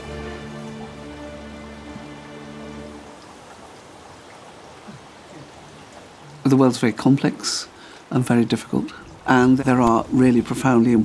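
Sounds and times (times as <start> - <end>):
held low music notes: 0.0 - 3.4.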